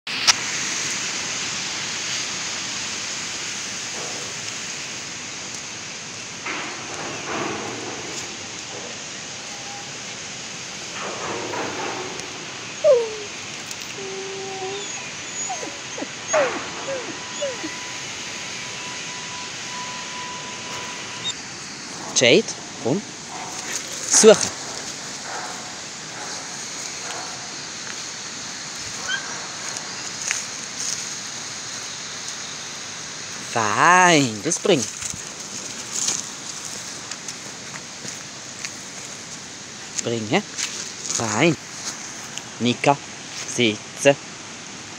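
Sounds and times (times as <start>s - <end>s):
rustling in dry leaves: 0.1s - 44.9s
steady hiss: 0.1s - 44.9s
dogs whimpering: 11.0s - 21.4s, 23.3s - 30.7s.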